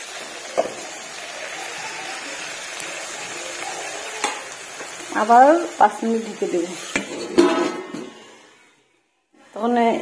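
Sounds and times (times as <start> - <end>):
metal lid clanking: 6.8 - 8.2.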